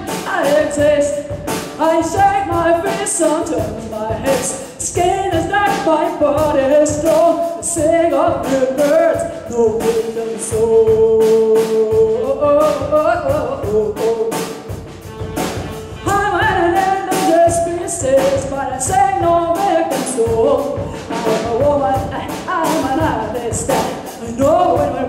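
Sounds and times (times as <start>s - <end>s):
woman singing: 0.0s - 14.8s, 16.0s - 25.0s
live jazz band: 0.0s - 25.0s.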